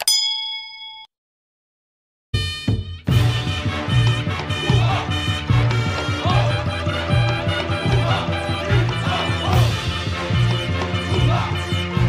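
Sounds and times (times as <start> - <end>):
bright bell ding: 0.0 - 1.1.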